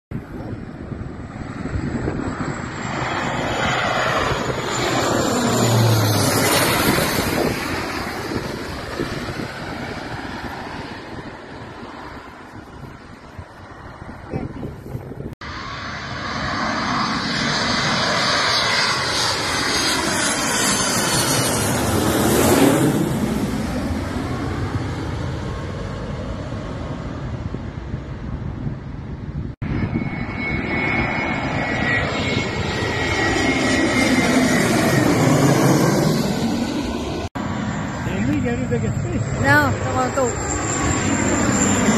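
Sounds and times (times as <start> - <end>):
jet airliner passing overhead: 0.1 - 41.9
turboprop plane passing overhead: 0.1 - 41.9.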